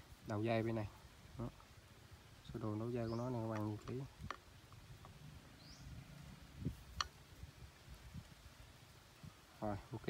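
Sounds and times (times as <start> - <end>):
bird chirp: 2.4 - 4.1, 5.0 - 6.7.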